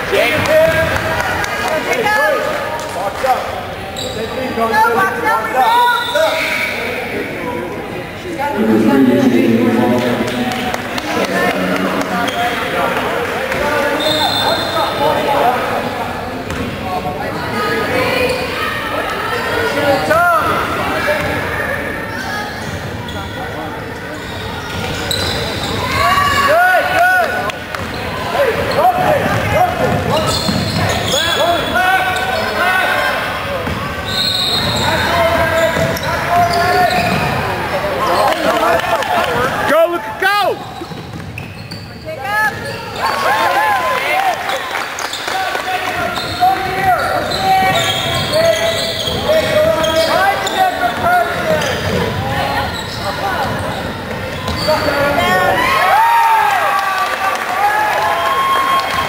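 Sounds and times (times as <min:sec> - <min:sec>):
spectators' voices: 0:08.4 - 0:13.8
sneaker squeaks on hardwood: 0:40.8 - 0:42.0.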